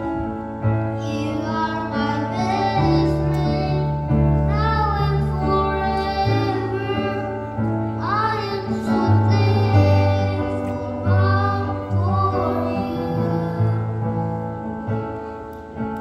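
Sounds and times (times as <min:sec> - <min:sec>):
boy singing into microphone: 0:00.9 - 0:14.4.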